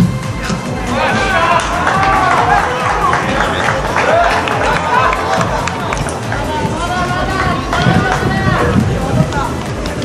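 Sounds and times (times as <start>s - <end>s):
voices shouting and cheering: 0.6s - 10.0s.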